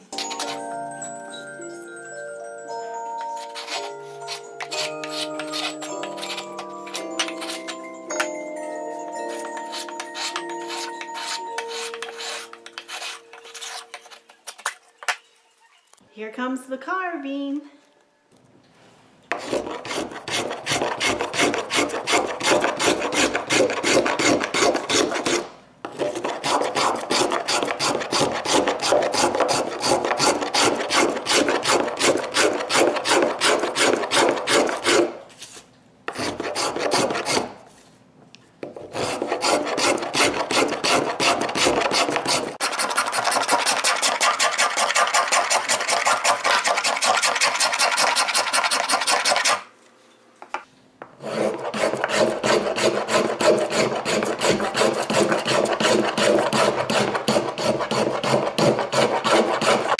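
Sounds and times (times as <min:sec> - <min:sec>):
carving tool rasping on wood: 0:03.4 - 0:08.3, 0:09.3 - 0:14.2, 0:19.3 - 0:35.2, 0:36.1 - 0:37.6, 0:38.8 - 0:49.6, 0:51.2 - 0:59.9.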